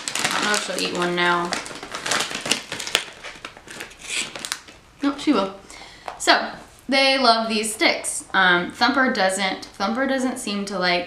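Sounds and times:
dry crackling and crinkling: 0.0s - 5.4s.

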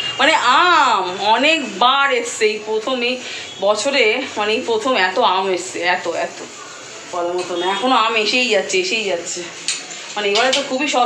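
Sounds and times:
woman speaking: 0.2s - 9.6s, 10.2s - 11.0s.

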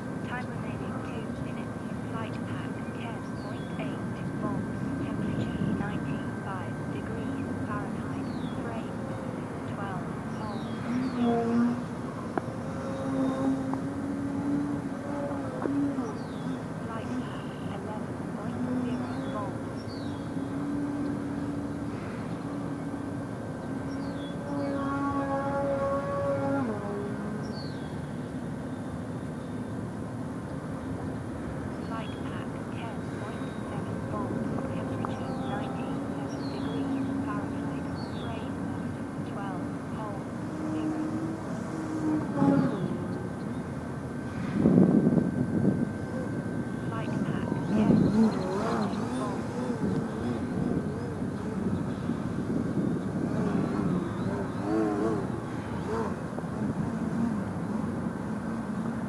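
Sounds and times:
model plane motor and propeller: 47.9s - 59.0s.

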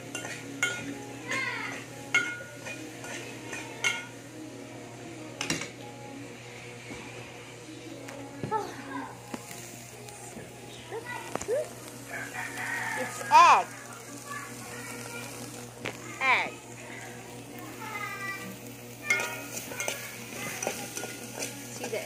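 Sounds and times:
metal pot and utensil clinking: 0.0s - 4.2s, 19.0s - 22.0s.

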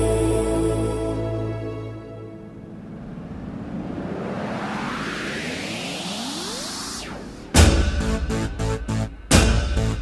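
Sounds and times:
upward-gliding tones: 1.1s - 7.6s
rising whoosh riser: 1.8s - 9.2s.

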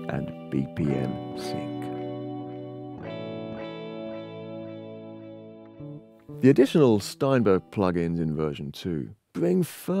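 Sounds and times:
electric guitar chords with delay: 0.0s - 7.8s.

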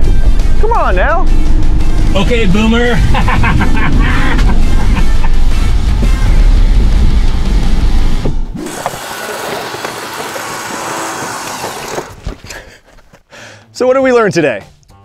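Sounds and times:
heavy low rumble: 0.0s - 8.6s
background music: 0.0s - 8.7s.

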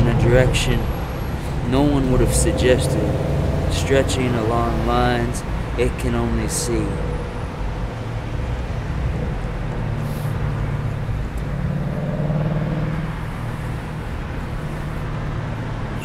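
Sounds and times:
low traffic rumble: 0.0s - 16.0s
vehicle engine hum: 0.0s - 16.0s.

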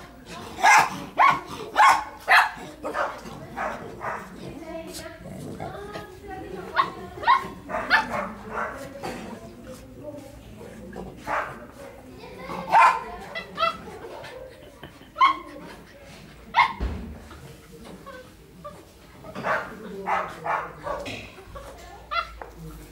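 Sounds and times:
dogs barking and yipping: 0.4s - 4.6s, 6.6s - 8.9s, 12.6s - 14.4s, 15.0s - 15.7s, 16.5s - 16.8s, 19.2s - 22.5s.

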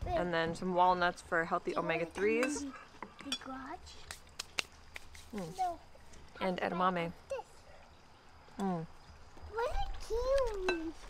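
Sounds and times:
spoon clinking against bowl: 2.2s - 2.6s.

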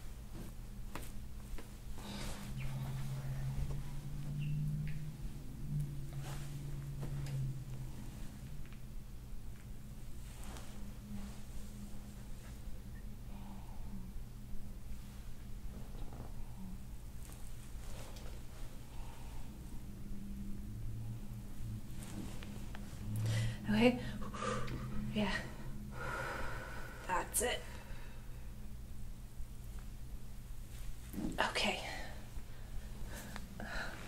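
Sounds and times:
massage roller rubbing and crackling: 0.0s - 8.9s, 9.5s - 12.8s, 15.0s - 19.0s, 20.0s - 23.2s
steady low hum: 0.0s - 34.0s.

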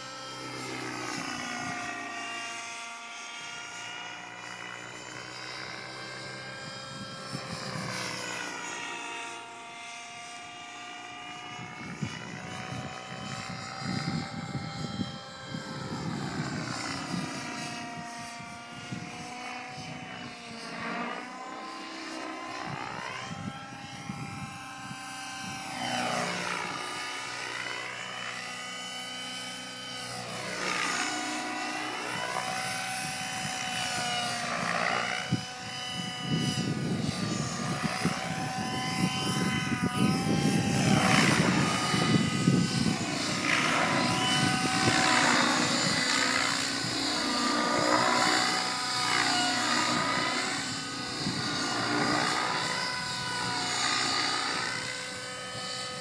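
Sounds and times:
model helicopter engine whine: 0.0s - 56.0s.

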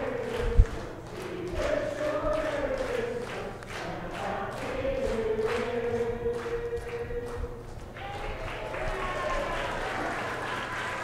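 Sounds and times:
choir singing a hymn: 0.0s - 7.7s.

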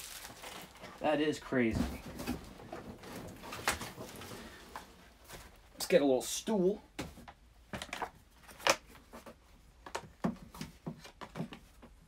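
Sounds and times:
low room noise: 0.0s - 12.0s.

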